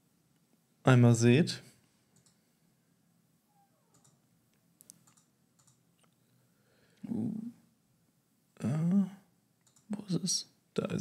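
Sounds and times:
faint clicks: 0:02.1 - 0:02.4, 0:03.9 - 0:06.2, 0:09.6 - 0:10.0.

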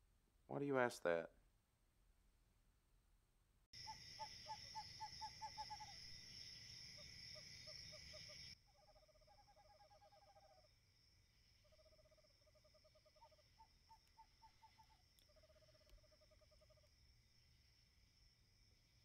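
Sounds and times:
rapid hoot-like calls: 0:03.8 - 0:10.8, 0:11.6 - 0:16.9.

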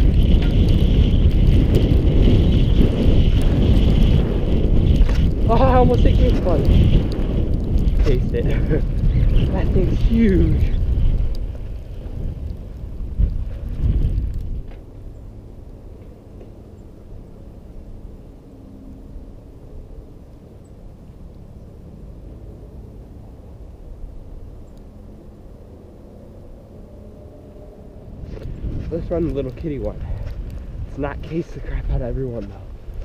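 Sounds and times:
bike tyres on dirt: 0:00.0 - 0:15.2, 0:28.1 - 0:33.0
outdoor background: 0:00.0 - 0:33.0
wind rumble: 0:00.0 - 0:33.0.

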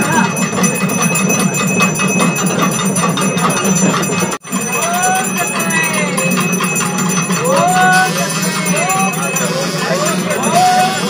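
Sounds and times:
bells ringing rapidly: 0:00.0 - 0:11.0.

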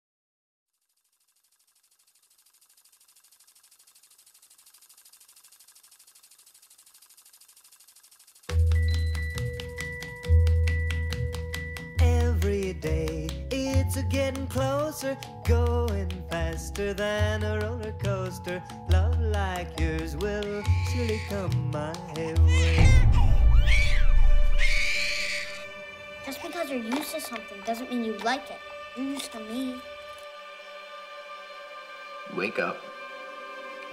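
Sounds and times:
rapid high-pitched clicking: 0:00.8 - 0:22.9
backing music: 0:08.6 - 0:20.7, 0:25.6 - 0:33.9
baby crying: 0:20.4 - 0:25.9.

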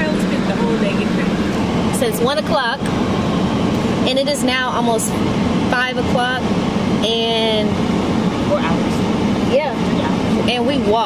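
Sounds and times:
car engine hum: 0:00.0 - 0:11.0.

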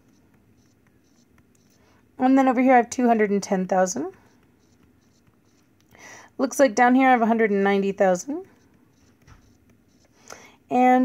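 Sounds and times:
stylus scratching on glass: 0:00.0 - 0:01.8, 0:02.8 - 0:05.8, 0:07.5 - 0:10.2.

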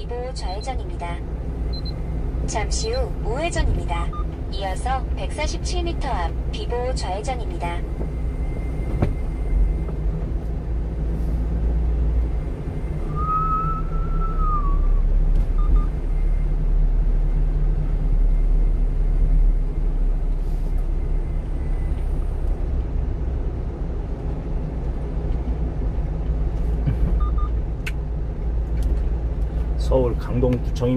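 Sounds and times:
truck engine and tyres droning: 0:00.0 - 0:30.9
high squeal: 0:12.9 - 0:15.1.

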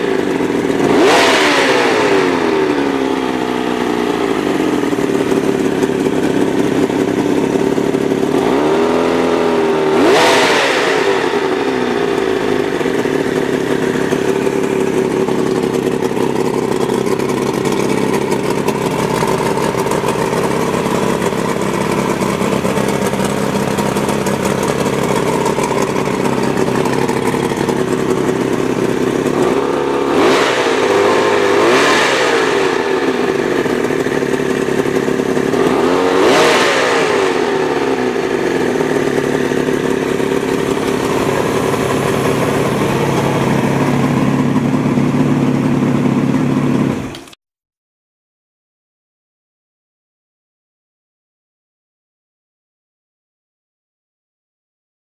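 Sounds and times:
outboard motor revving: 0:00.0 - 0:47.2.

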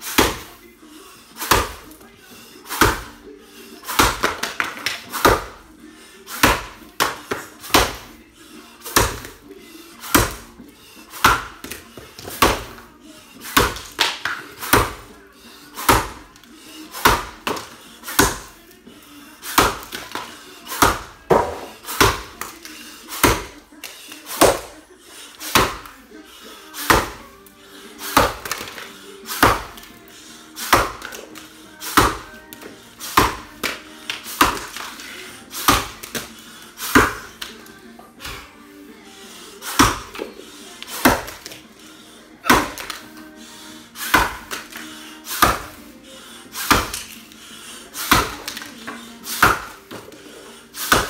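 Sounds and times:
background music: 0:00.0 - 0:51.0
axe chopping log: 0:00.1 - 0:00.5, 0:01.4 - 0:01.9, 0:02.7 - 0:03.2, 0:03.9 - 0:05.6, 0:06.3 - 0:08.1, 0:08.8 - 0:09.4, 0:10.0 - 0:10.5, 0:11.2 - 0:12.8, 0:13.4 - 0:15.1, 0:15.8 - 0:16.3, 0:16.9 - 0:18.6, 0:19.4 - 0:22.5, 0:23.1 - 0:23.5, 0:24.3 - 0:24.8, 0:25.5 - 0:25.9, 0:26.8 - 0:27.2, 0:28.0 - 0:29.9, 0:30.6 - 0:37.6, 0:39.6 - 0:41.6, 0:42.4 - 0:43.0, 0:44.0 - 0:45.8, 0:46.6 - 0:47.2, 0:48.0 - 0:50.2, 0:50.8 - 0:51.0.

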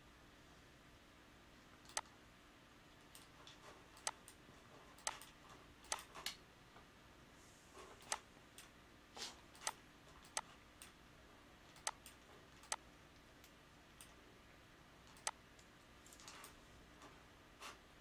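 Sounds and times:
computer mouse clicks: 0:01.8 - 0:02.2, 0:03.0 - 0:06.4, 0:08.0 - 0:08.8, 0:09.4 - 0:11.0, 0:11.7 - 0:14.2, 0:15.0 - 0:17.2.

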